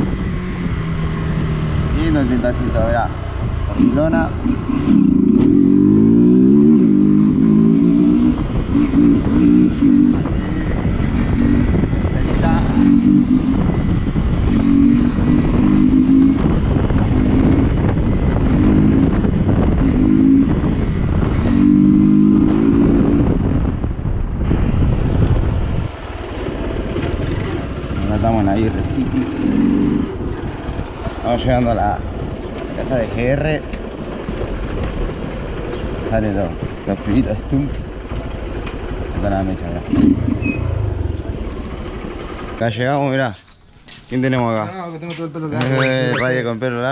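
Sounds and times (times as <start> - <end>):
wind noise on microphone: 0.0 - 42.6
motorcycle engine revving: 0.0 - 44.7.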